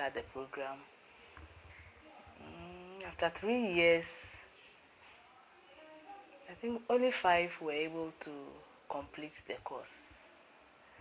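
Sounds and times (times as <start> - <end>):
faint low room rumble: 0.0 - 11.0
woman humming mm: 2.4 - 3.0.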